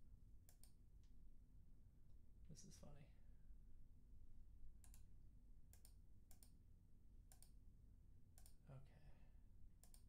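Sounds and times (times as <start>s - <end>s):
quiet room hum: 0.0s - 10.0s
computer mouse clicking: 0.5s - 0.8s, 4.8s - 5.1s, 5.7s - 6.6s, 7.3s - 7.6s, 8.4s - 8.6s, 9.8s - 10.0s.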